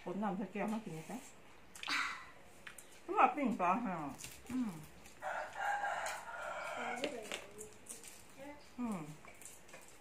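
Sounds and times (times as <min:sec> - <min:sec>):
rooster crowing: 0:05.2 - 0:07.2.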